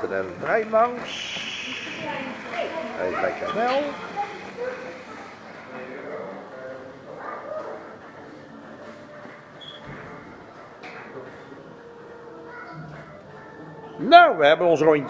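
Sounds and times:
indistinct background voices: 0.0s - 15.0s.

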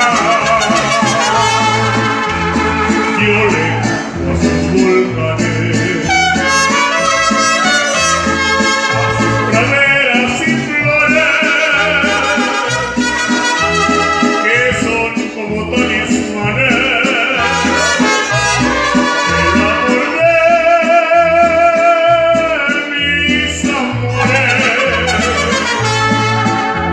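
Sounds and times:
person singing: 0.0s - 8.2s, 8.8s - 13.2s, 14.0s - 26.9s
mariachi band playing: 0.0s - 26.9s.

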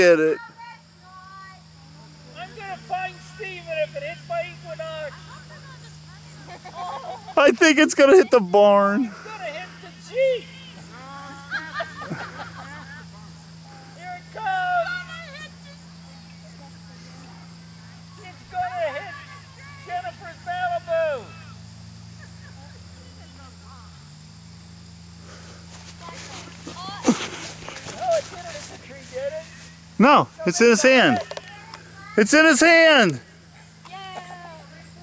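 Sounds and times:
distant people calling out: 0.0s - 35.0s
steady low hum: 0.0s - 35.0s.

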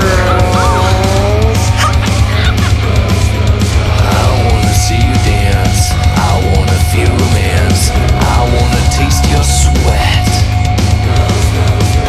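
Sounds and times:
lead electric guitar bending notes: 0.0s - 2.2s
bass guitar: 0.0s - 12.0s
drums and cymbals: 0.0s - 12.0s.

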